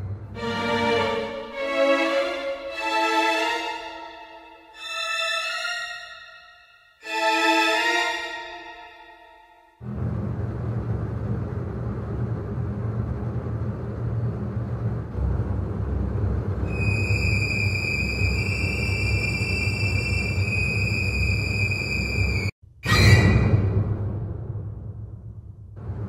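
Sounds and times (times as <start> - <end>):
ominous low rumbling drone: 9.8 - 22.4, 23.5 - 26.0
high piercing whine: 16.7 - 22.5.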